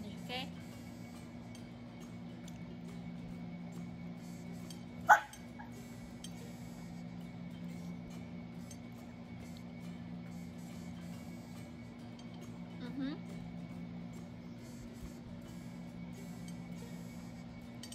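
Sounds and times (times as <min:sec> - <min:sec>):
low hum: 0:00.0 - 0:17.9
dog barking: 0:05.1 - 0:05.4.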